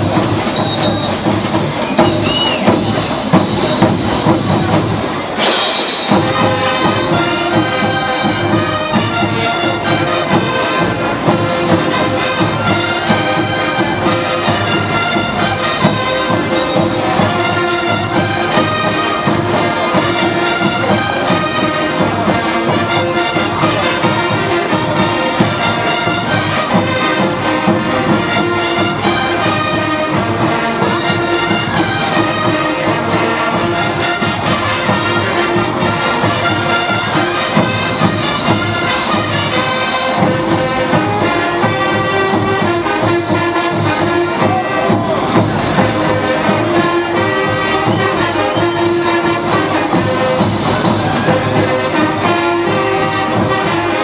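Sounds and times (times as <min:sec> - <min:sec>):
brass band playing dance music: 0:00.0 - 0:54.0
steady drum beat: 0:00.0 - 0:54.0.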